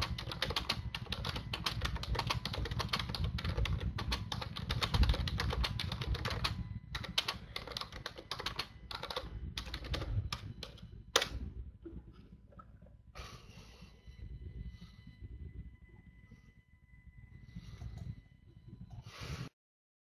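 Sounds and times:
keyboard typing clicks: 0.0s - 11.4s
low steady hum: 0.0s - 19.5s.

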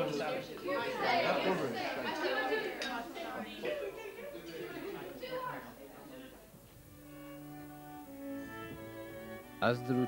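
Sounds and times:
teenagers chatting: 0.0s - 10.0s.

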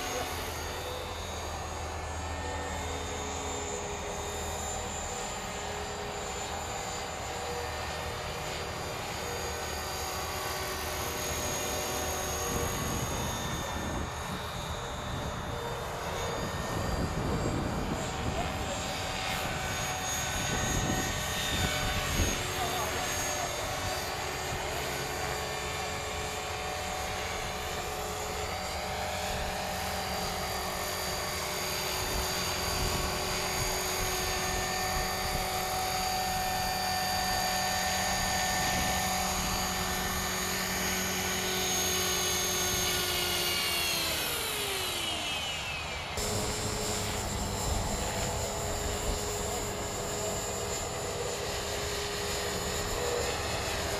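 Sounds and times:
rc helicopter motor whine: 0.0s - 53.9s
rotor whirring: 0.0s - 53.9s.

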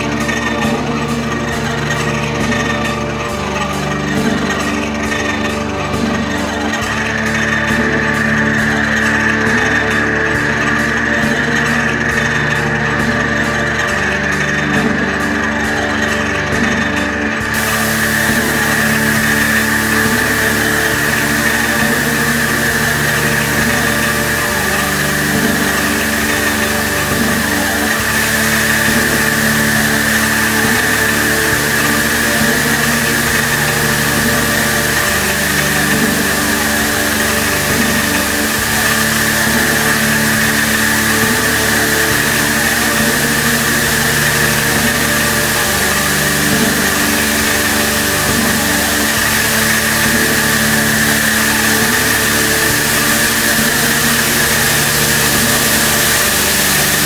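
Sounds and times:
hiss: 0.0s - 57.0s
loud drone of held tones: 0.0s - 57.0s.

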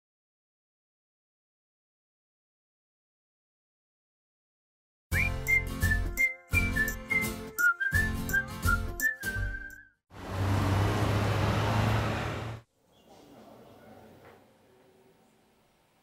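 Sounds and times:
whistled melody over a beat: 5.1s - 10.0s.

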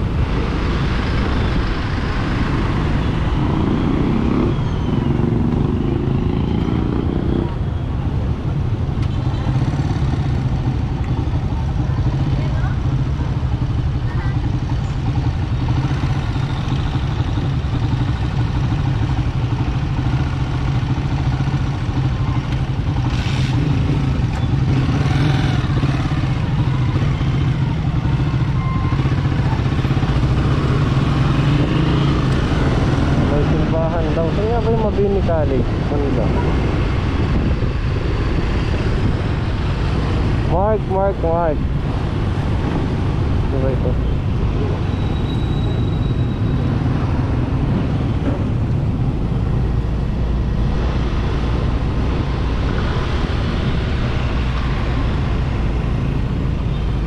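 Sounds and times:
motorcycle engine cruising: 0.0s - 57.0s
road and wind noise: 0.0s - 57.0s.

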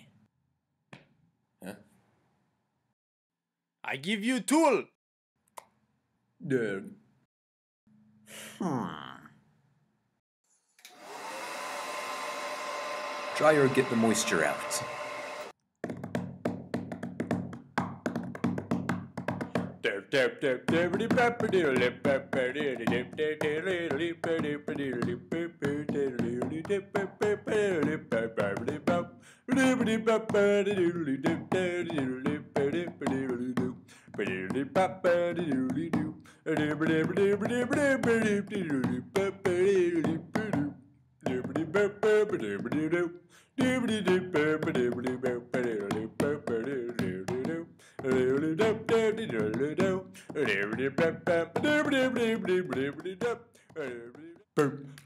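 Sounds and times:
hair dryer whirring: 10.8s - 15.6s
person singing: 19.8s - 40.7s, 41.3s - 55.0s.

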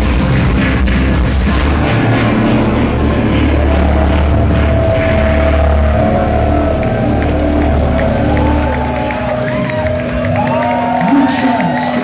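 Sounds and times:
held synth chord: 0.0s - 10.6s
deep droning bass: 0.0s - 11.7s
audience cheering and whooping: 1.6s - 12.0s.

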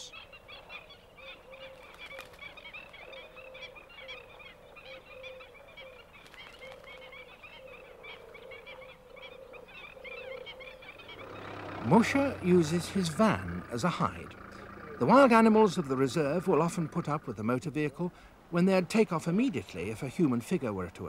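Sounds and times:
birds yelping calls: 0.0s - 21.0s.

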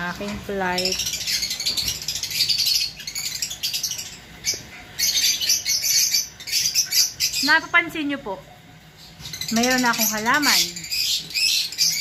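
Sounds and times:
caged birds chirping: 0.0s - 12.0s.

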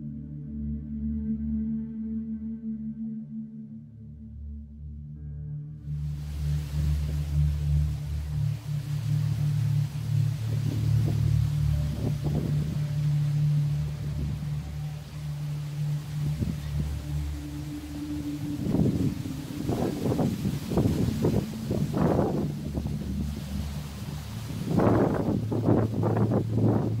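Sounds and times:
low musical drone: 0.0s - 27.0s
leaves rustling: 5.9s - 27.0s
wind buffeting microphone: 6.0s - 27.0s.

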